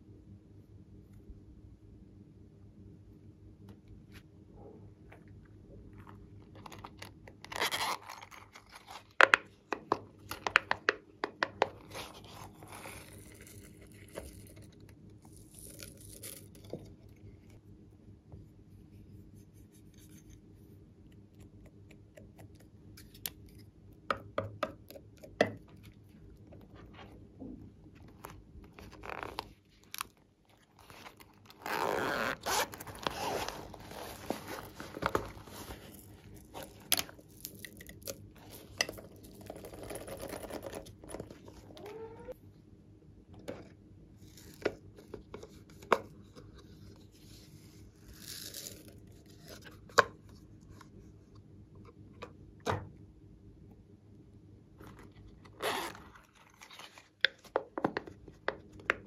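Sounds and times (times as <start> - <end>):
zipper pulled open: 7.5 - 8.4, 30.8 - 36.8, 54.9 - 56.4
handling rustles: 28.0 - 37.6.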